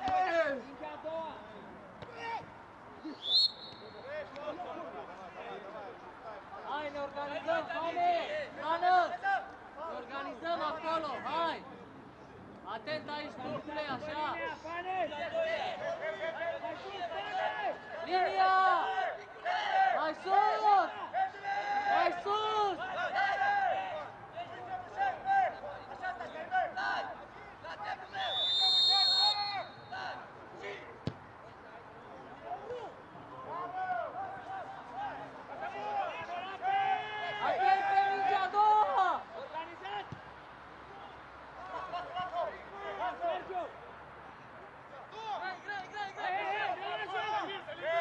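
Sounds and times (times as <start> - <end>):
players shouting: 0.0 - 11.6, 13.2 - 31.3, 32.2 - 44.0, 45.1 - 48.0.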